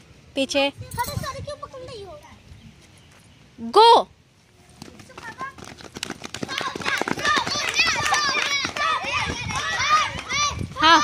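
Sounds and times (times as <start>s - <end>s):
children shouting and cheering: 6.4s - 11.0s.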